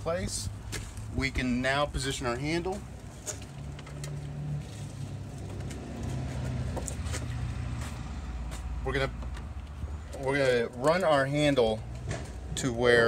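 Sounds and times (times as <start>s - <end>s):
vehicle engine humming: 0.0s - 13.0s.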